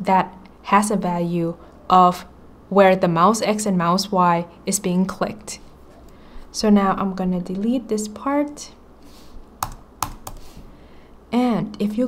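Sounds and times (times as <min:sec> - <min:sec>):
keyboard keys clicking: 0:09.6 - 0:10.4.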